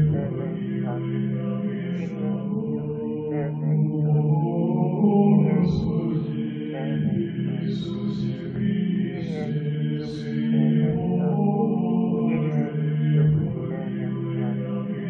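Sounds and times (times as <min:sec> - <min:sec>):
slow vocal chant: 0:00.0 - 0:15.0.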